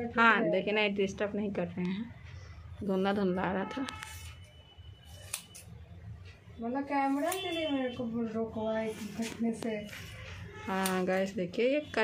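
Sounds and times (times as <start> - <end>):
woman's voice: 0.0 - 4.1, 6.6 - 12.0
scissors snipping hair: 5.2 - 5.7, 7.2 - 7.6, 10.7 - 11.3.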